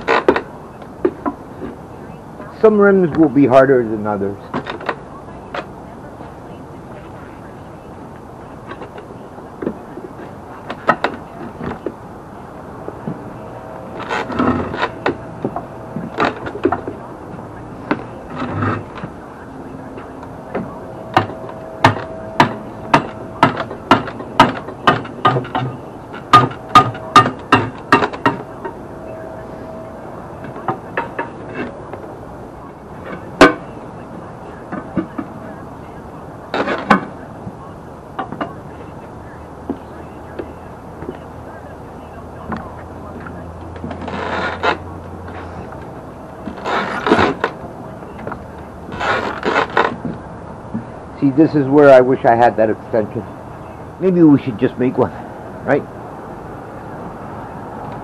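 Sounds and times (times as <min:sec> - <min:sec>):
tire bead squeaking: 0:00.0 - 0:58.0.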